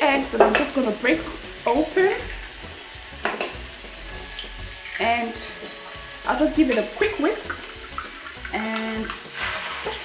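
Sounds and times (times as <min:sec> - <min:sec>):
food sizzling in a pot: 0:00.0 - 0:10.0.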